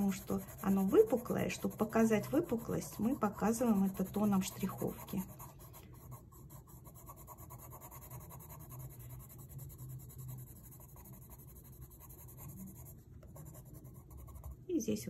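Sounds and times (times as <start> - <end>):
pencil scratching on paper: 0.0 - 14.7.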